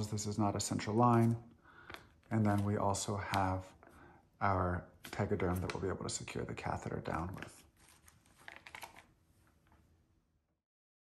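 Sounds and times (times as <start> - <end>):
plastic packaging rustling: 7.1 - 9.8
packaging clicks: 8.3 - 9.1.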